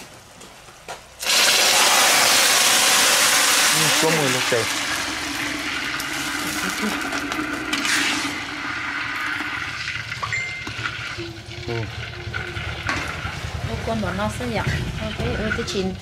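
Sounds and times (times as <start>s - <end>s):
water pouring into a pot: 1.2s - 16.0s
ladle stirring liquid: 4.6s - 13.7s.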